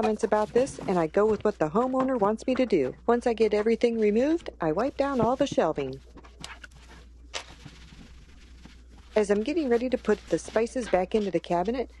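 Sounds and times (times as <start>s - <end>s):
cloth rubbing on wood: 4.2s - 11.9s.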